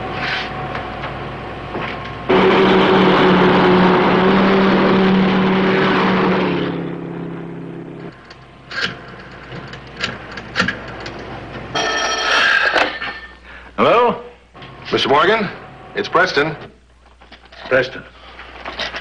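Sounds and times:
car driving past: 2.3 - 8.1
telephone bell ringing: 11.7 - 13.3.

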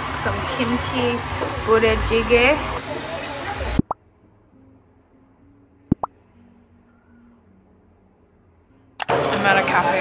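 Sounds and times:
rising bloop pop effects: 3.8 - 4.0, 5.9 - 6.1.

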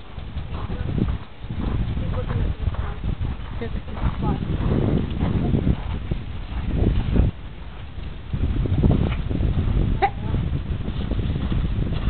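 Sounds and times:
horse hoofbeats: 0.0 - 12.0.

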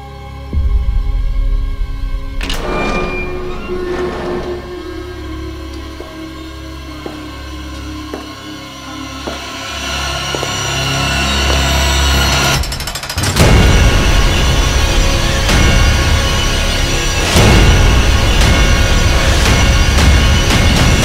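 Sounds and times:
suspenseful soundtrack music: 0.0 - 21.0.

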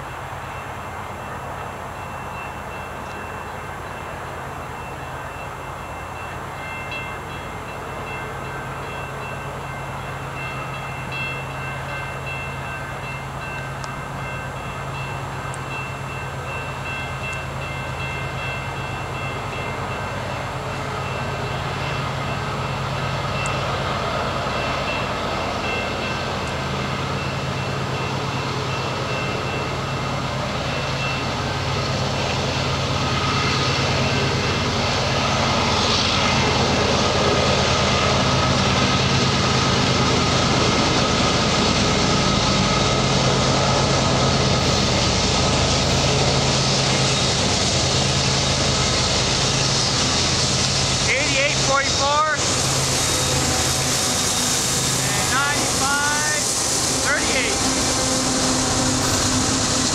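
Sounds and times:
locomotive engine drone: 0.0 - 59.9
train bell ringing: 0.0 - 59.9
train wheels rushing on rail: 0.0 - 59.9.

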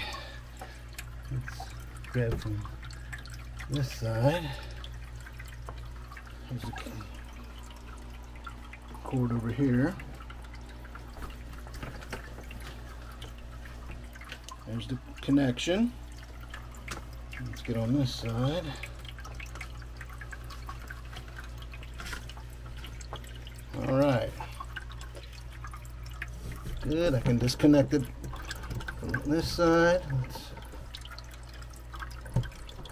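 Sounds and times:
low steady hum: 0.0 - 32.9
water trickling and dripping: 0.0 - 32.9.

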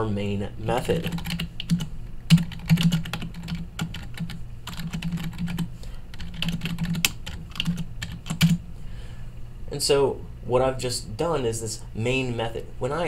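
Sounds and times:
steady low hum: 0.0 - 13.0
typing on computer keyboard: 1.0 - 8.6.

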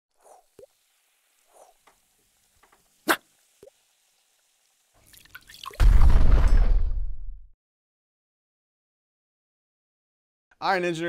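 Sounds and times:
rising fizz: 0.1 - 5.8
cartoon drips and plops: 0.2 - 0.9, 5.0 - 5.8
deep explosion boom: 5.8 - 7.5.

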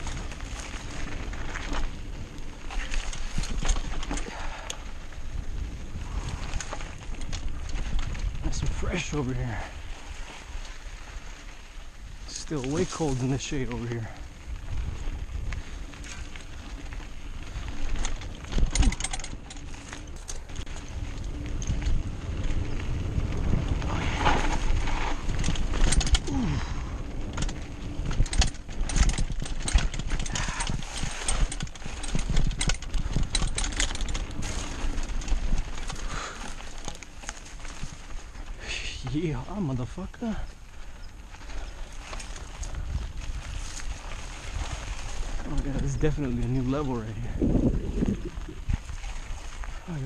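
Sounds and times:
wind on microphone: 0.0 - 11.4, 13.9 - 36.8, 40.7 - 50.0
bike rattling over bumps: 0.0 - 50.0
tyres crunching over loose dirt: 0.0 - 50.0.

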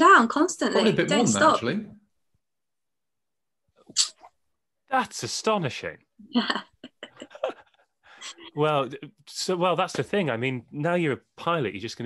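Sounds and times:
person speaking: 0.6 - 2.0, 5.0 - 7.6, 8.2 - 12.0.

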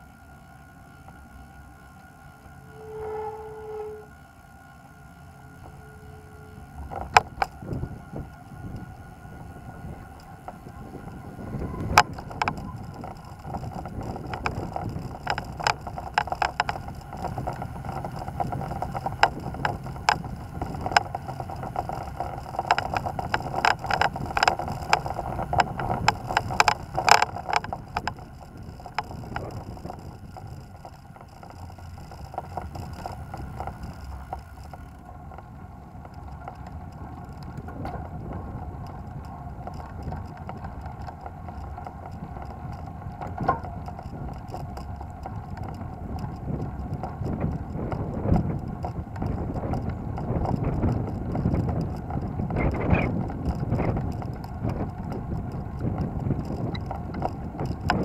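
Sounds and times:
bike frame rattling: 0.0 - 58.0
bike tyres rumbling: 0.0 - 58.0.

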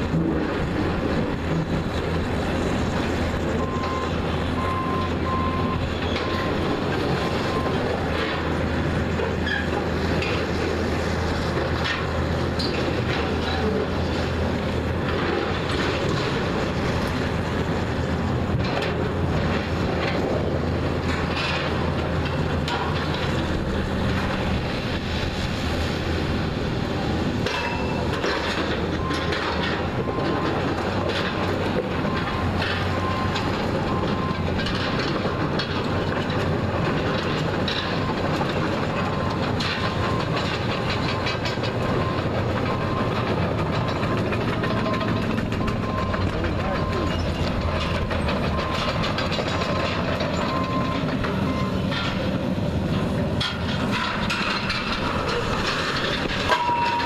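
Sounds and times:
diesel excavator engine under load: 0.0 - 57.0
steel beams clanking and crunching: 0.0 - 57.0.

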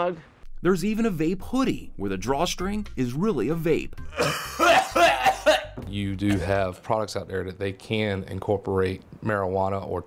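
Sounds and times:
man coughing: 4.1 - 6.6.

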